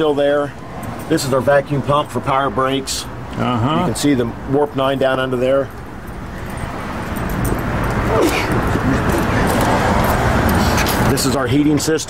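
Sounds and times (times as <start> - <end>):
passing vehicle: 0.0 - 12.0.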